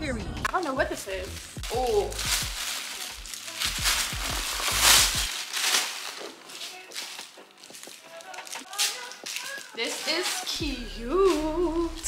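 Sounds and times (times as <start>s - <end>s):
plastic packaging crinkling: 0.5s - 12.0s.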